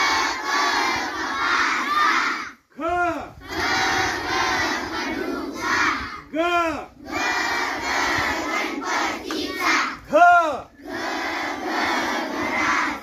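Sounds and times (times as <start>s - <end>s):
children chanting and shouting: 0.0s - 13.0s.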